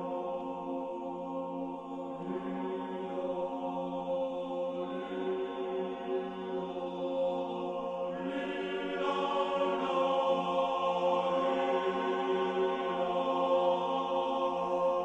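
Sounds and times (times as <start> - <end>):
men's choir singing: 0.0 - 15.0.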